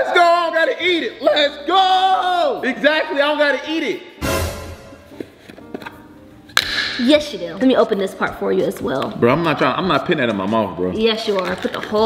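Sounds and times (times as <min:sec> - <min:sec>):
faint background music: 0:00.0 - 0:12.0
jar lid popping free: 0:06.5 - 0:07.0.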